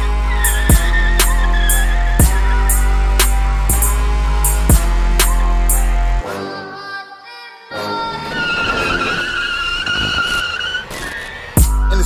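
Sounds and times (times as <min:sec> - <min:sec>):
tires squealing: 0:00.0 - 0:05.9, 0:07.9 - 0:12.0
deep heavy bass beat: 0:00.0 - 0:06.2, 0:11.6 - 0:12.0
music: 0:00.0 - 0:09.3, 0:11.6 - 0:12.0.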